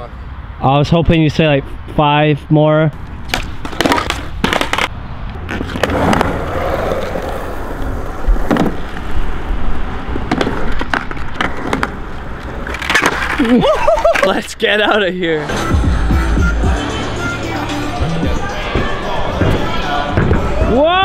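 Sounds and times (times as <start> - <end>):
skateboard deck slaps and clacks: 3.3 - 4.9, 8.3 - 9.0, 10.2 - 13.4
skateboard wheels rolling: 3.3 - 14.7, 17.9 - 21.0.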